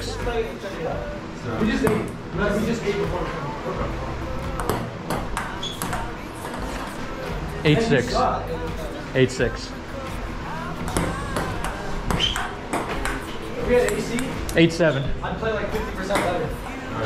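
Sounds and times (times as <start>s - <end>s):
people's voices: 0.0s - 17.0s.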